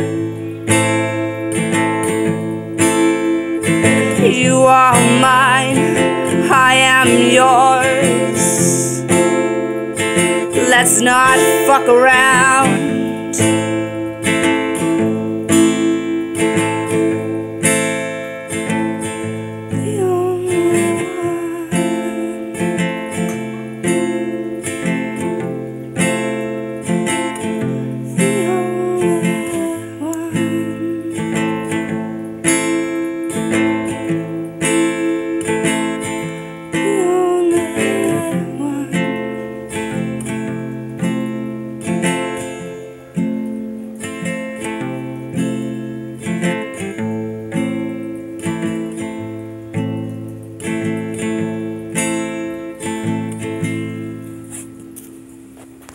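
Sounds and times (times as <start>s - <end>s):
acoustic guitar strumming chords: 0.0s - 55.9s.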